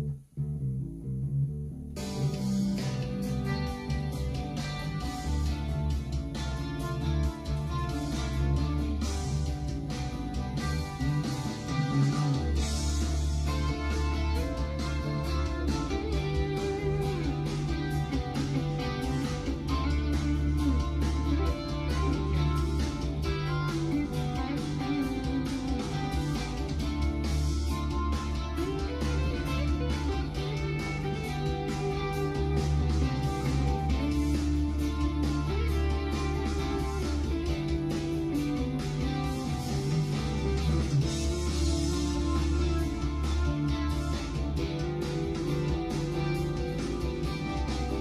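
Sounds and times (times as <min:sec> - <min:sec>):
bass guitar: 0:00.0 - 0:48.0
plucked string lead: 0:00.0 - 0:48.0
drums keeping a steady beat: 0:02.0 - 0:48.0.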